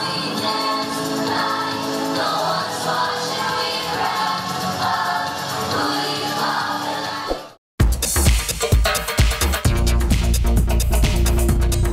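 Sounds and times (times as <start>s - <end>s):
voices singing pop song in unison: 0.0s - 7.6s.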